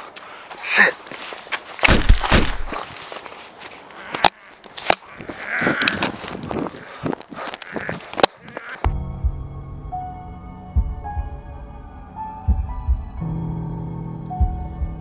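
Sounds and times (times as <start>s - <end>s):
footsteps through long grass: 0.0s - 8.7s.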